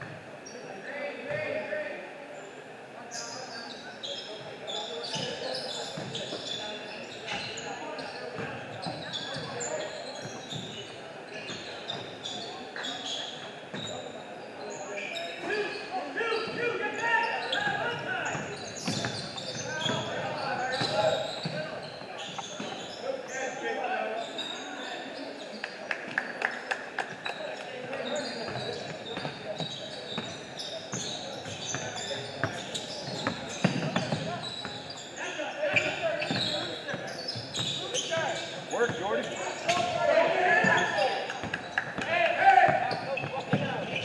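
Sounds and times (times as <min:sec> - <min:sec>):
sneakers squeaking: 0:03.0 - 0:44.0.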